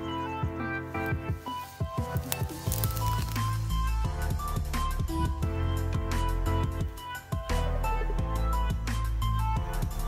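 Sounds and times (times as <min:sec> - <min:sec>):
music with deep bass beat: 0:00.0 - 0:10.0.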